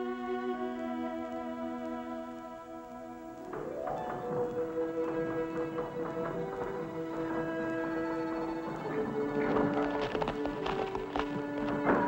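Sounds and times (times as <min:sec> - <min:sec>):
background music with held notes: 0:00.0 - 0:12.0
horse hooves clip-clopping: 0:00.6 - 0:12.0.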